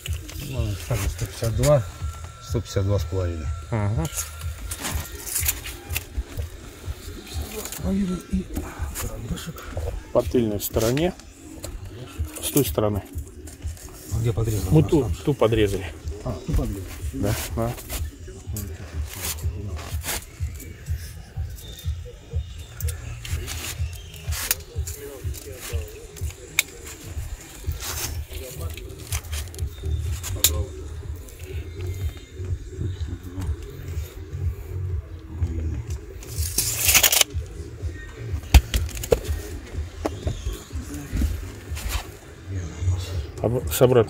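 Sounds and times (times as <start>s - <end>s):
clicks and handling noise: 0.0s - 2.3s, 22.6s - 32.3s, 35.8s - 42.2s.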